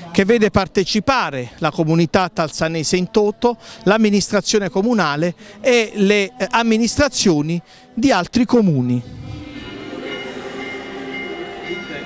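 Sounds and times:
crowd singing a hymn: 1.3 - 12.0.

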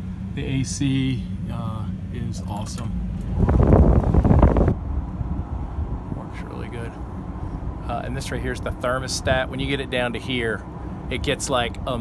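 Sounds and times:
wind noise on microphone: 3.2 - 6.1.

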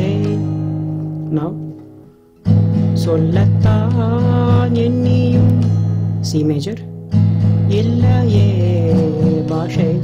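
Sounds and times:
acoustic guitar chord ringing: 0.0 - 10.0
loud acoustic guitar strum: 0.0 - 10.0.

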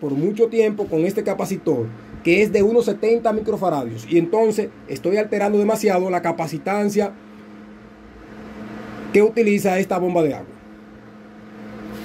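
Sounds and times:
motor or fan humming: 0.0 - 12.0.

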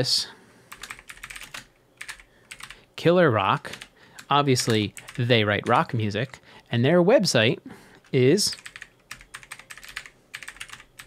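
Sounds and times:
computer keyboard typing: 0.7 - 2.8, 3.6 - 6.4, 8.0 - 11.0.

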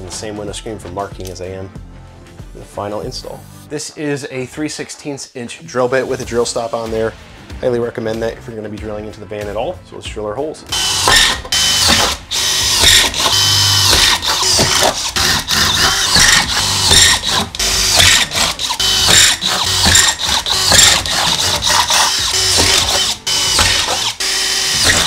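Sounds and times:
cordless drill drilling metal: 10.7 - 25.0.

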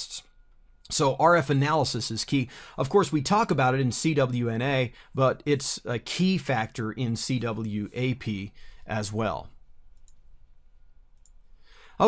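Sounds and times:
soft intake of breath: 2.4 - 2.8, 8.5 - 8.9, 11.5 - 12.0
small clicks: 11.2 - 11.4.

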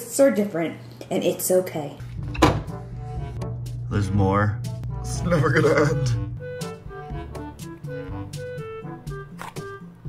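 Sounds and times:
background music: 2.0 - 10.0
freezer door thunk: 2.3 - 2.8.

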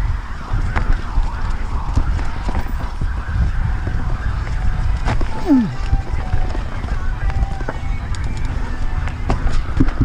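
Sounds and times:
wind buffeting microphone: 0.0 - 10.0
bike clicks and rattles: 6.1 - 10.0.

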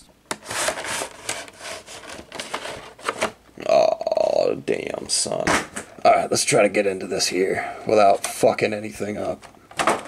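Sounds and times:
plastic case scraping cardboard: 0.3 - 3.4.

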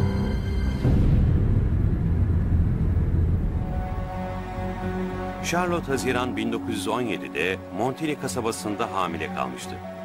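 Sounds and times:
low dark drone: 0.0 - 5.4.

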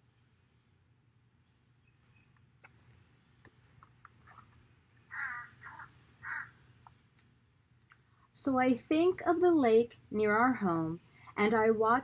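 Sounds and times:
book page turning: 2.0 - 4.6
bird calling: 5.0 - 6.6.

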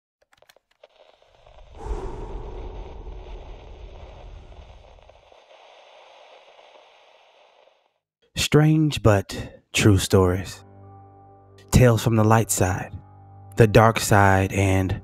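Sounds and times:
static hiss: 2.8 - 8.0.

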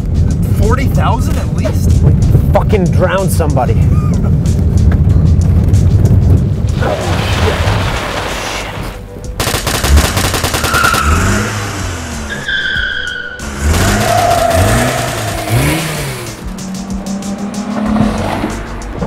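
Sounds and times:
car engine revving: 9.4 - 19.0
tyre squeals: 12.3 - 15.5.

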